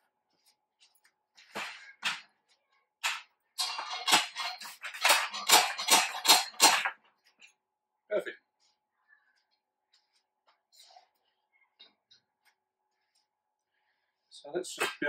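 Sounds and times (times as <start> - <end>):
steel shelving parts clattering: 3.0 - 7.0.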